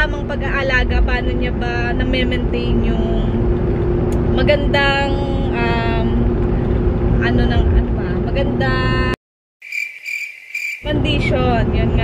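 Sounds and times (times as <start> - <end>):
cricket chirping trill: 9.6 - 10.9.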